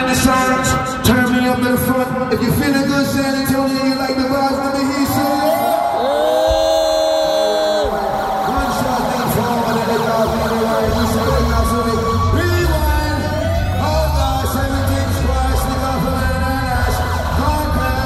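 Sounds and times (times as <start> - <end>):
hip-hop music over pa: 5.1 - 18.0
heavy bass beat: 6.0 - 18.0.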